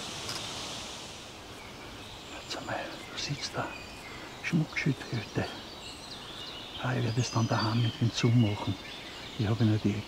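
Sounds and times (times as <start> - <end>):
small birds chirping faintly: 0.0 - 10.0.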